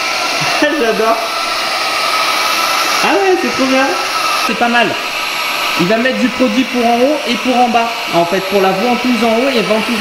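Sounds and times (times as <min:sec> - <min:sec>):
suction fan whirring with high whine: 0:00.0 - 0:10.0.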